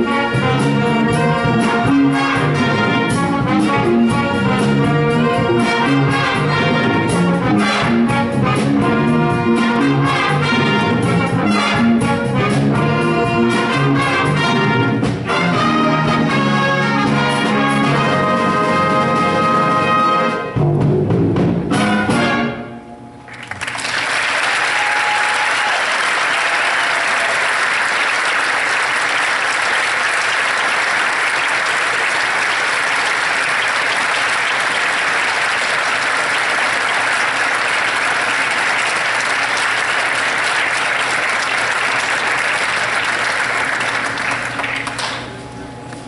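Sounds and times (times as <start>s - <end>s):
audience applauding: 23.3s - 45.4s.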